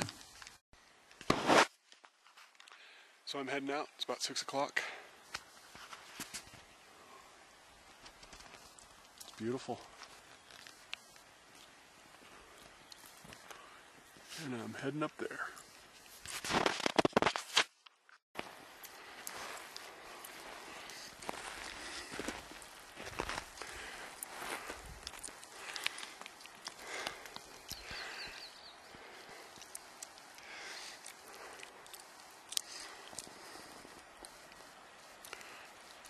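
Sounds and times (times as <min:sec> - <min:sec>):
clothing and gear rustling: 0:07.8 - 0:14.6, 0:15.6 - 0:36.0
footsteps on rocky ground: 0:18.4 - 0:34.3.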